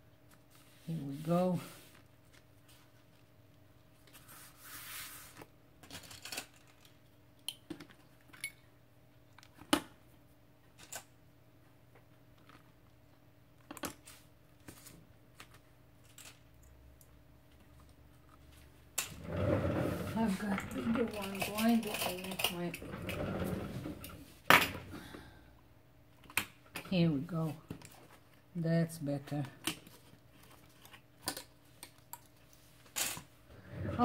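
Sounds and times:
person speaking: 0.8s - 1.9s, 19.2s - 23.8s, 28.5s - 29.6s, 33.6s - 34.0s.

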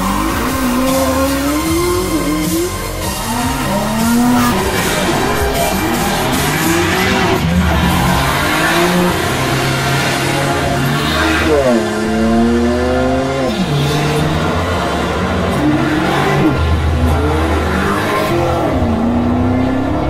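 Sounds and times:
background music: 0.0s - 20.0s
sports car engines revving: 0.0s - 20.0s.

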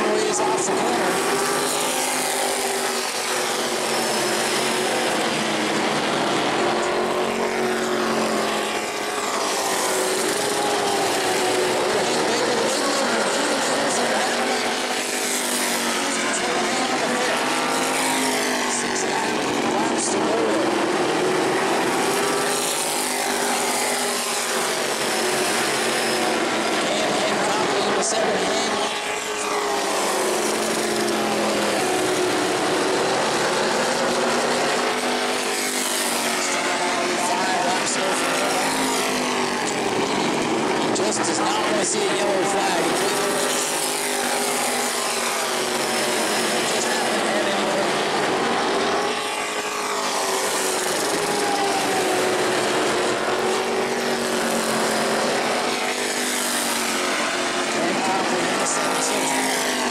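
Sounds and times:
race car engines passing: 0.0s - 59.9s.

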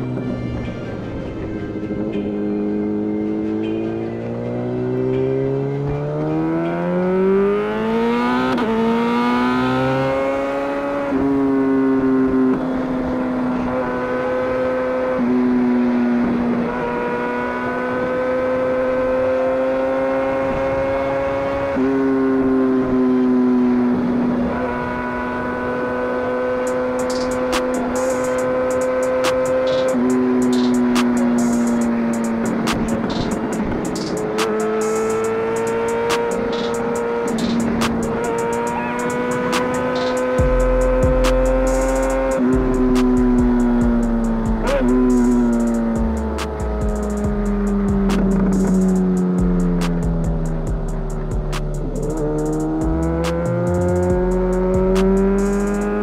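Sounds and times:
motorcycle engine at high revs: 2.7s - 56.0s.

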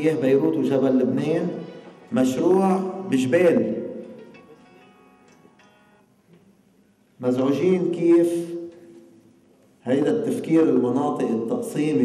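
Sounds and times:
public address echo: 0.0s - 12.0s.

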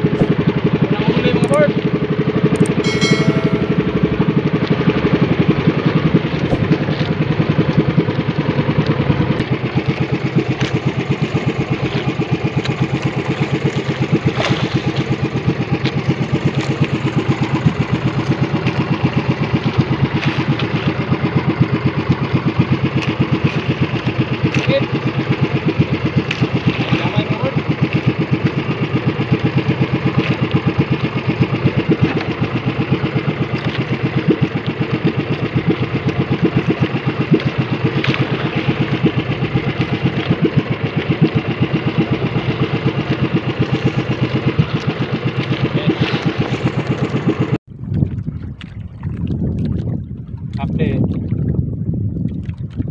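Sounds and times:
boat engine puttering: 0.0s - 52.9s.

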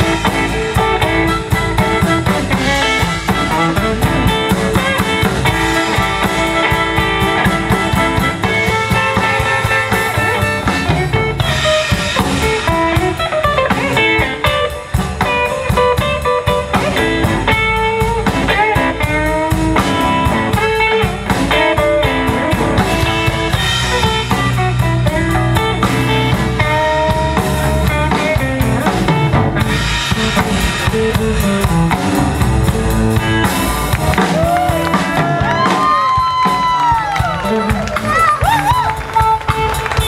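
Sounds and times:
blues band playing: 0.0s - 40.0s
electric guitar lead: 0.0s - 40.0s.

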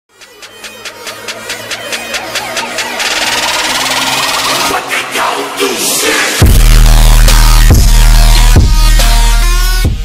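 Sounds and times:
hissing riser build: 0.2s - 6.4s
sweeping synth glides: 0.3s - 6.4s.

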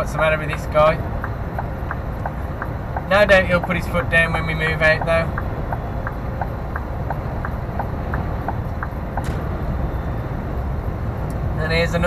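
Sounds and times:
faint regular ticking: 0.0s - 9.3s
truck engine and road rumble: 0.0s - 12.0s.

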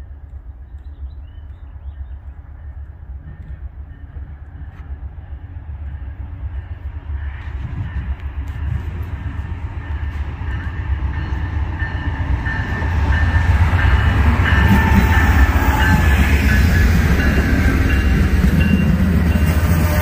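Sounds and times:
diesel train passing: 0.0s - 20.0s.

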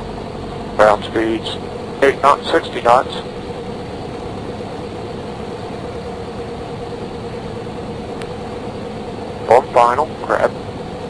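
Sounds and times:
airplane engine drone in cabin: 0.0s - 11.0s.

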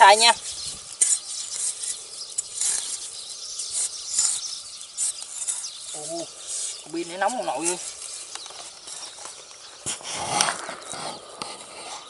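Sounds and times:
spade scraping into dry soil: 0.0s - 12.0s.

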